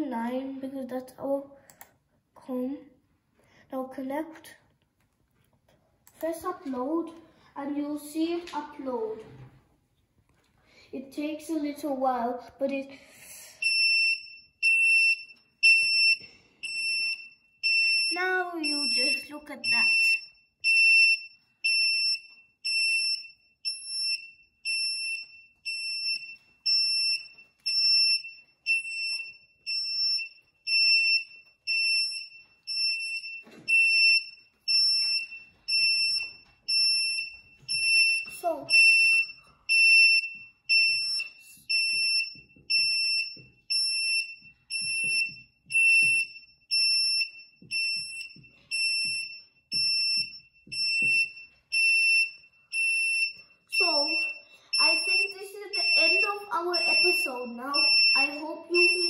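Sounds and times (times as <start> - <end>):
high-pitched buzzer beeping: 52.8 - 59.0.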